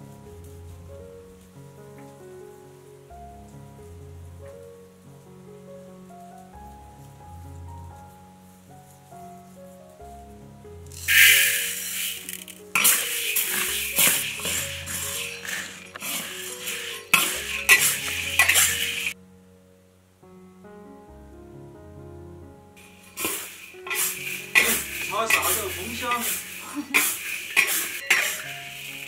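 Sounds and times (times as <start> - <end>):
soft instrumental music: 0.0 - 29.0
dry beans rattling: 10.9 - 19.2, 22.8 - 29.0
metal spatula scraping a wok: 11.0 - 19.2, 23.0 - 29.0.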